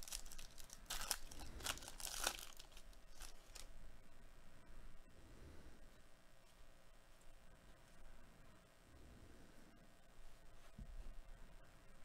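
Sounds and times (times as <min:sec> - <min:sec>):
foil wrapper tearing and crinkling: 0:00.0 - 0:03.7.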